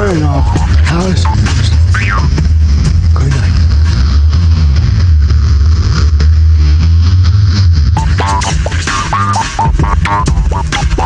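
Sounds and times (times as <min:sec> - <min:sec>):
psychedelic electronic music: 0:00.0 - 0:11.0.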